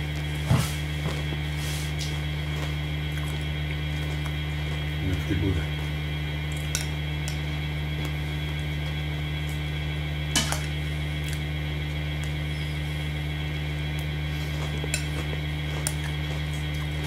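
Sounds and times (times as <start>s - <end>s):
electrical hum: 0.0s - 17.0s.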